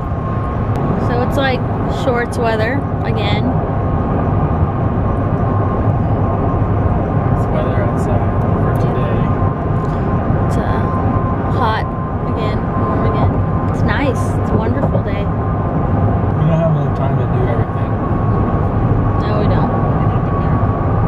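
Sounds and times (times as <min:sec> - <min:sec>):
car cabin road and engine noise: 0:00.0 - 0:21.0.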